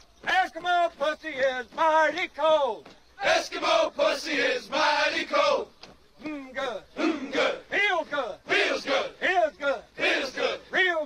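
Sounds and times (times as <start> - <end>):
men chanting marching cadence: 0.1 - 11.0.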